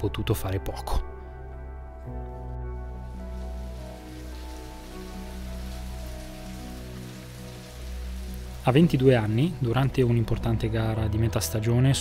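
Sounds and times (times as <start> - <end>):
soft music of held chords: 0.0 - 12.0
steady rain falling: 2.8 - 10.7.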